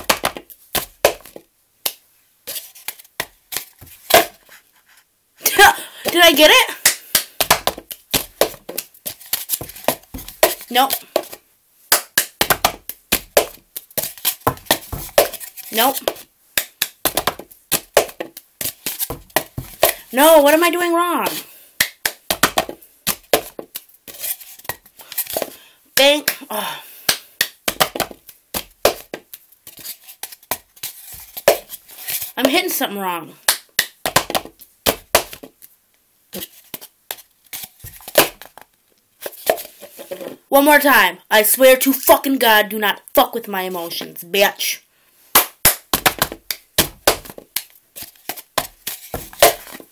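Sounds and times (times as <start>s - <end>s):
hand claps: 6.8s - 7.4s.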